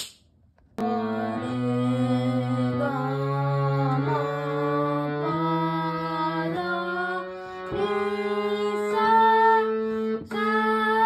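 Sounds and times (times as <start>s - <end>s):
harmonium reed chords: 0.8s - 11.0s.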